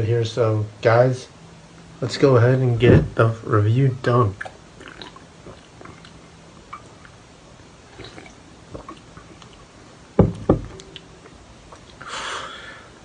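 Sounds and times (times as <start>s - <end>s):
drinking from a can: 4.4s - 7.2s, 7.9s - 9.7s
can knocking on wooden desk: 10.2s - 10.8s.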